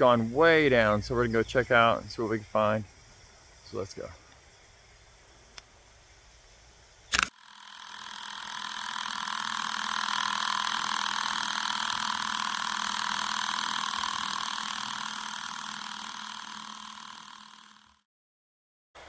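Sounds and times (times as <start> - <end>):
electronic drone: 7.2 - 18.0.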